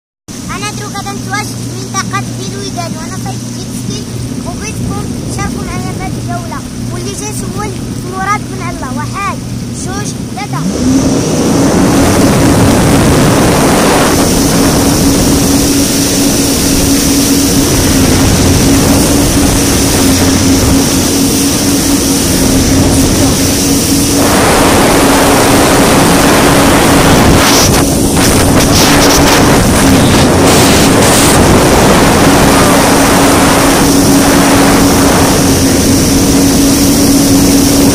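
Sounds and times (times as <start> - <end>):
jet ski engine revving: 0.3 - 37.9
rush of wind and spray: 0.3 - 37.9.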